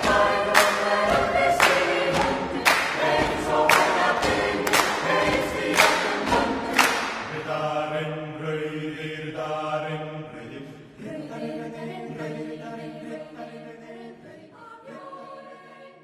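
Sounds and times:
choir singing sustained chords: 0.0 - 16.0.

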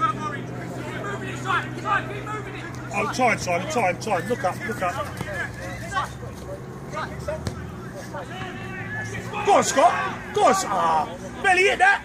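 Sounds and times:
distant players shouting: 0.0 - 12.0.

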